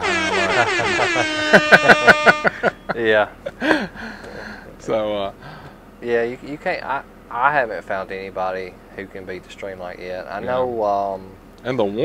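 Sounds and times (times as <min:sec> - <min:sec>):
horn tone sliding down: 0:00.0 - 0:02.9
rapid short horn blasts: 0:00.0 - 0:02.9.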